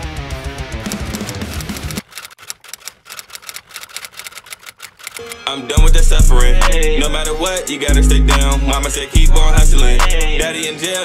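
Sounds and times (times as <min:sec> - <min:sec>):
guitar music: 0:00.0 - 0:01.9, 0:05.2 - 0:10.9
sharp ticking beat: 0:05.8 - 0:10.8.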